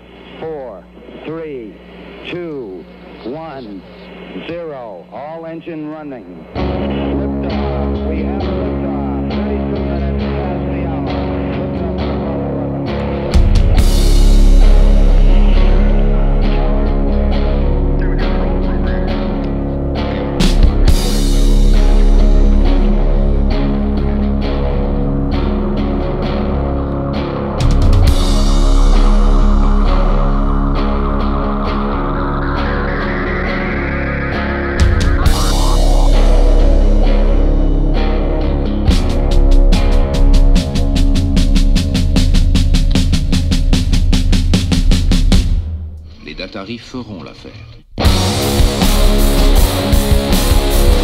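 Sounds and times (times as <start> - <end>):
fuzzed guitars and bass: 0.0 - 46.7, 47.8 - 51.0
rock band playing: 6.5 - 45.9, 48.0 - 51.0
drum beat: 34.5 - 46.1, 48.0 - 51.0
drums and cymbals burst: 48.0 - 51.0.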